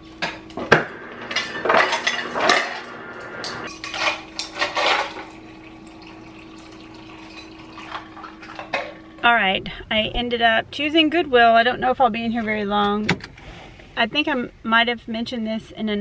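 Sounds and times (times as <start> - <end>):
water pouring into cup: 3.7 - 9.2.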